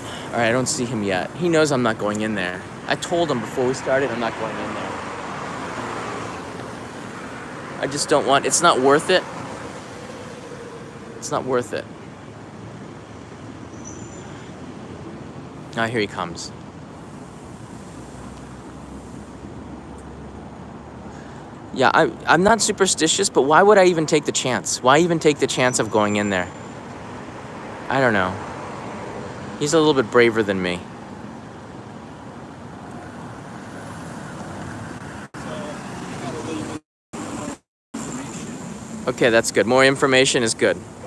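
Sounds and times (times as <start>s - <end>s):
road traffic rumble and hiss: 0.0s - 41.0s.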